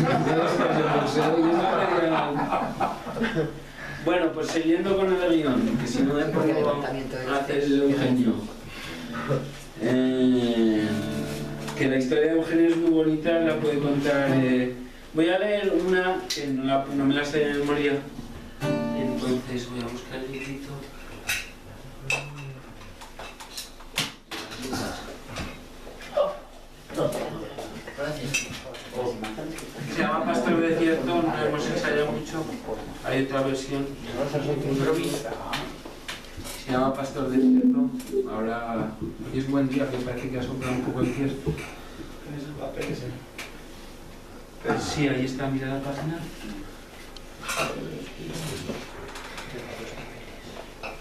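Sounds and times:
low murmuring voice: 21.9s - 22.8s.

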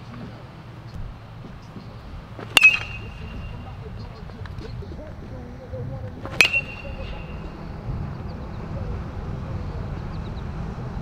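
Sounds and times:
metal bat hitting ball: 2.4s - 3.9s, 6.2s - 7.6s.

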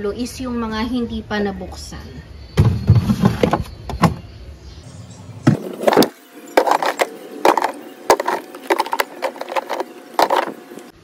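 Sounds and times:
cartons knocking and scraping on shelf: 2.6s - 4.2s, 5.4s - 10.6s.

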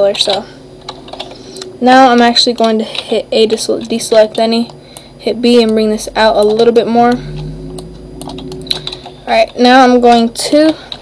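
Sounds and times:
keyboard and mouse clicking: 0.2s - 11.0s
person humming: 7.0s - 8.9s.

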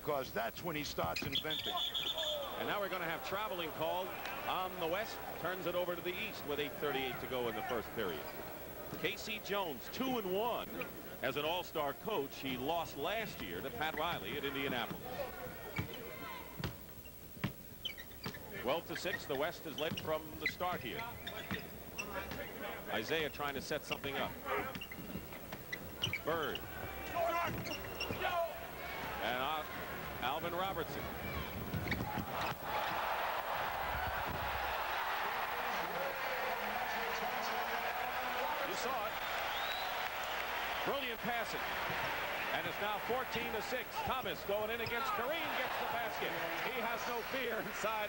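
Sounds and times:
arena crowd noise: 0.0s - 17.1s, 17.9s - 48.0s
basketball bouncing on hardwood: 24.7s - 28.2s.

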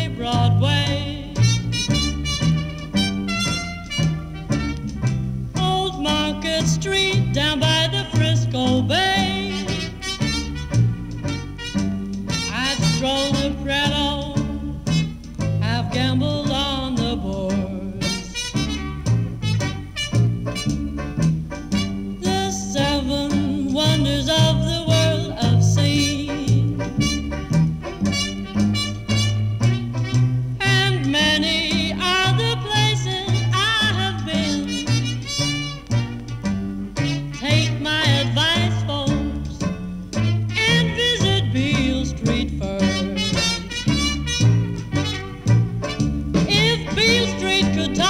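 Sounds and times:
jazz band playing blues: 0.0s - 48.0s.

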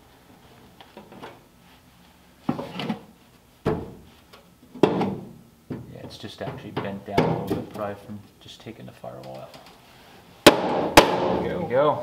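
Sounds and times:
knocks on sheet-steel panel: 10.4s - 11.4s.

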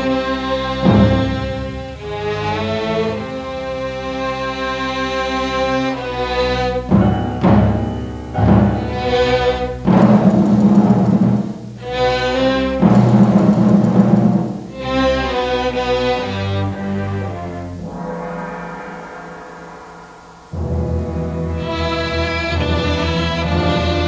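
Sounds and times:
orchestra playing heavy chords: 0.0s - 24.0s.

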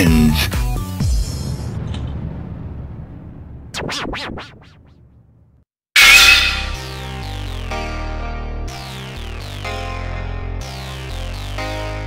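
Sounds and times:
loud sudden hit: 6.0s - 7.0s.

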